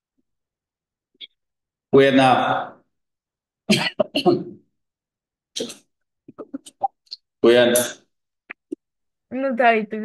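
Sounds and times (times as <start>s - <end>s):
person coughing: 3.7s - 4.5s.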